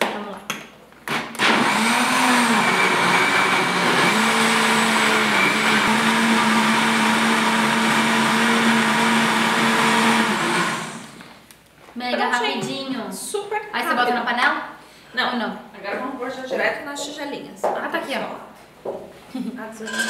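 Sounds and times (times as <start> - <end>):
blender motor winding down: 1.4 - 11.3
blender running: 1.4 - 11.3.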